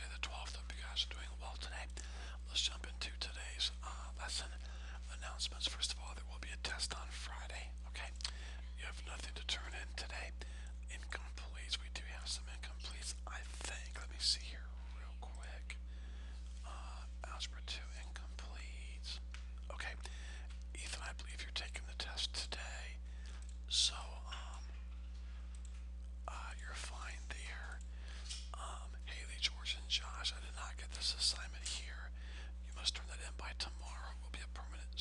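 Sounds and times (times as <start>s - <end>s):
low electrical hum: 0.0s - 35.0s.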